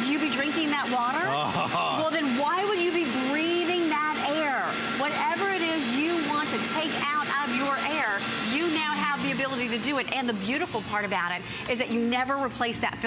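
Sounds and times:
vacuum cleaner humming: 0.0 - 11.7
person talking: 1.1 - 2.5.

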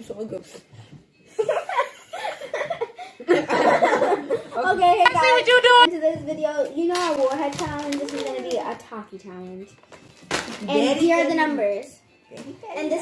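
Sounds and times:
children talking: 4.5 - 9.0.

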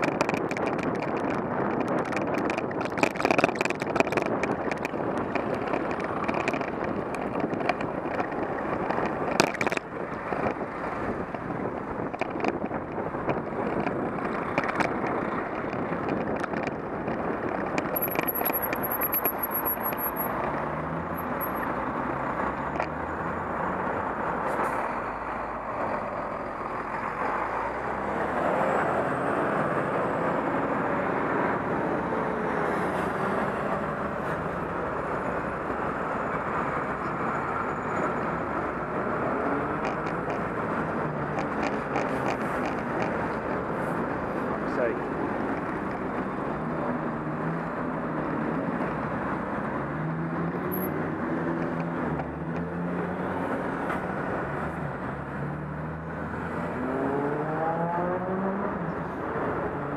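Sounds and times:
wind: 0.0 - 59.9
lorry and car engines passing: 20.3 - 59.9.

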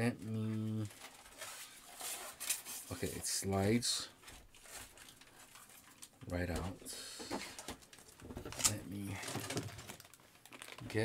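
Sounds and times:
plastic wrap rustling: 0.5 - 11.0.

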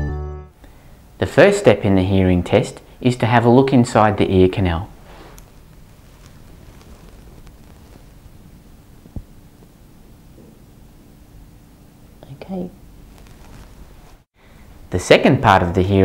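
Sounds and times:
faint steady hum: 0.5 - 16.0.

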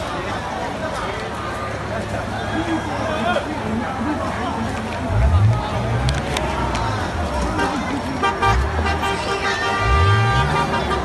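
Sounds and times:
crowd noise: 0.0 - 11.0
street noise: 0.0 - 11.0
vehicle horn: 8.2 - 11.0.

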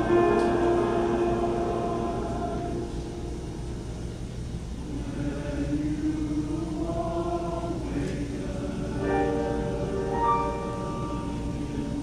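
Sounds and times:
men's choir singing a cappella: 0.0 - 3.3, 4.8 - 12.0.

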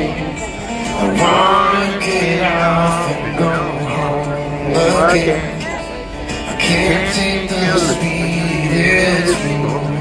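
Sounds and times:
amplified acoustic guitar: 0.0 - 10.0
man singing: 0.0 - 10.0.

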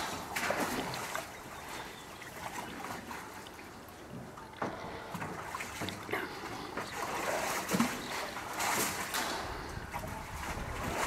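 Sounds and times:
water splashing in metal tub: 0.0 - 3.6, 4.7 - 11.0.

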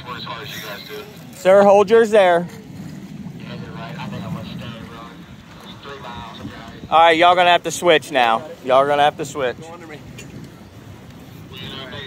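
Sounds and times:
faint voices talking: 0.0 - 12.0
low rumble: 1.1 - 6.9.

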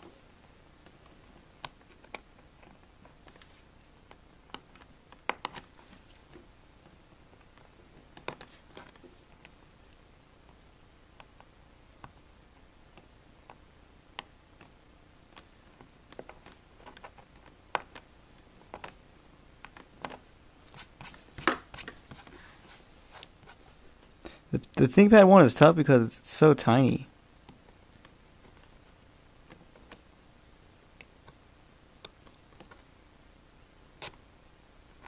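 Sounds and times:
soft rubbing hiss: 0.0 - 4.4, 5.0 - 11.6, 20.5 - 27.0
fingertips tapping on vinyl: 0.0 - 19.0, 19.6 - 22.3, 27.4 - 31.4
small scratches and clicks: 0.4 - 12.3, 12.9 - 19.0, 19.6 - 23.7, 27.4 - 31.4, 32.0 - 32.9, 34.0 - 34.2
hand tool clicking on vinyl: 0.8 - 3.2.

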